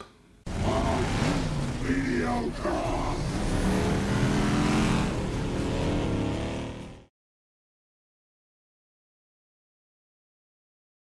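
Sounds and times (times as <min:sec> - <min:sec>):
vehicle engine hum: 0:00.5 - 0:07.1.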